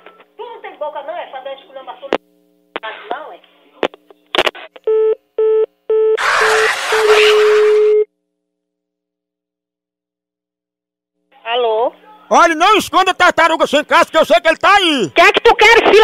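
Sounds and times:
busy tone beeps: 0:04.9 - 0:08.1.

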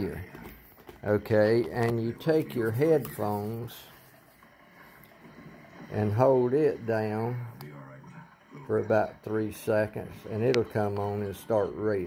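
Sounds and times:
man speaking: 0:00.0 - 0:04.0, 0:05.9 - 0:12.0.

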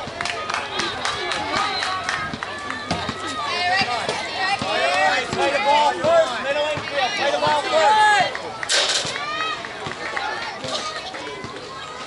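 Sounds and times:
children calling out and cheering: 0:06.8 - 0:12.0.

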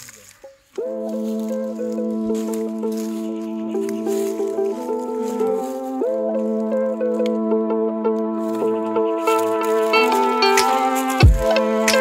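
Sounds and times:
held low note: 0:00.8 - 0:11.8
stepping melody: 0:00.8 - 0:12.0.

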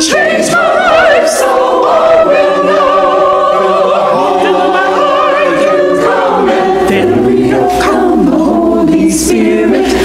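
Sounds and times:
church choir singing: 0:00.0 - 0:10.0.

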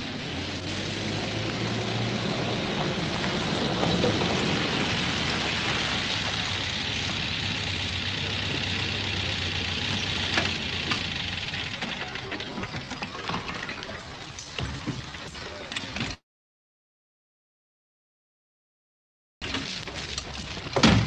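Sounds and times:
vehicle engine running: 0:00.0 - 0:14.2.

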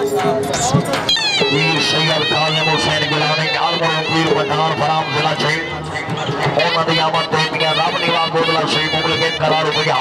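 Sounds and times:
dhol drum beating: 0:00.0 - 0:10.0
high wavering pipe melody: 0:01.0 - 0:06.2.

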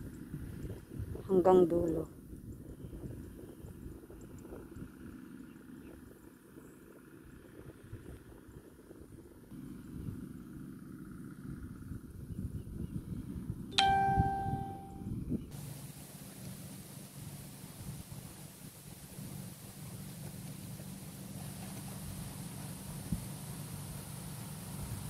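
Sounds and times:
bright ding: 0:13.8 - 0:15.1.

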